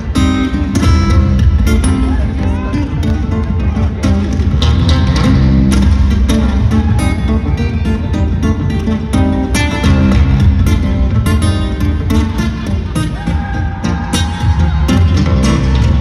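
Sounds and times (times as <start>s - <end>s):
fingerstyle acoustic guitar: 0.0s - 13.1s.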